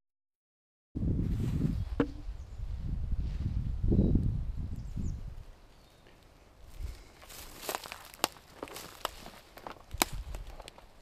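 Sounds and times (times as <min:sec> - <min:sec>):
footsteps crunching through dry leaves: 0:06.6 - 0:11.0.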